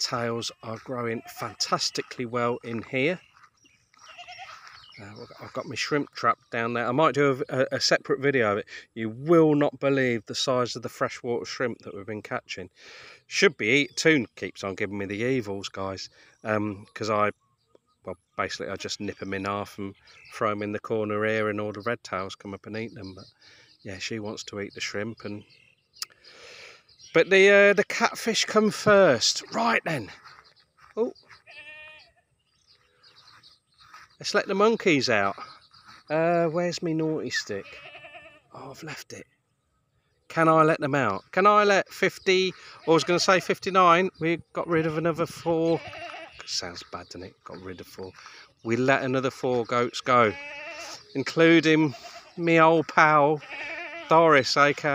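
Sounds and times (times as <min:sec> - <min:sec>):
goats bleating: 0:00.4 - 0:02.3, 0:03.4 - 0:05.6, 0:31.3 - 0:32.2, 0:37.3 - 0:38.7, 0:42.5 - 0:43.7, 0:44.6 - 0:47.0, 0:49.7 - 0:54.8.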